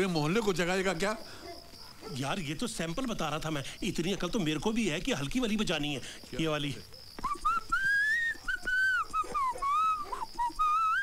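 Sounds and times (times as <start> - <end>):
person whistling a tune: 7.2 - 11.0.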